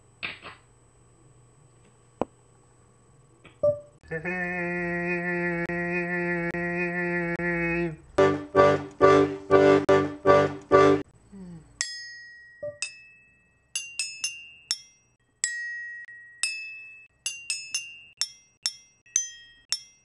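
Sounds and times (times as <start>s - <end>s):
accordion playing chords: 7.3s - 11.1s
toy instrument bell-like notes: 11.8s - 20.0s.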